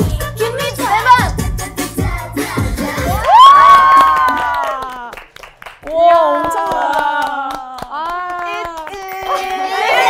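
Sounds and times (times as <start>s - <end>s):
dance music: 0.0s - 4.4s
women cheering: 3.1s - 10.0s
hand claps: 3.2s - 10.0s.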